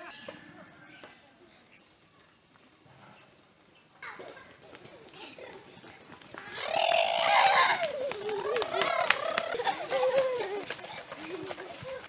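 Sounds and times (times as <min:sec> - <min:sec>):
child shouting: 0:06.5 - 0:10.7.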